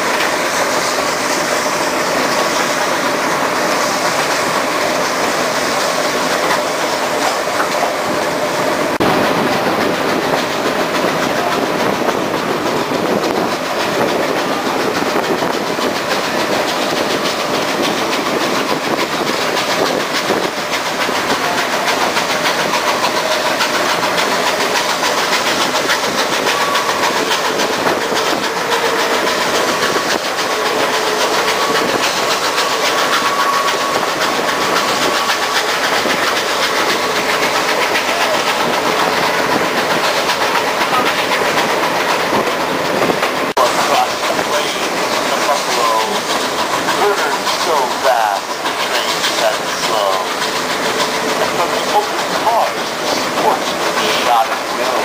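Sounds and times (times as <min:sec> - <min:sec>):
train wheels clattering on rails: 0:00.0 - 0:55.0.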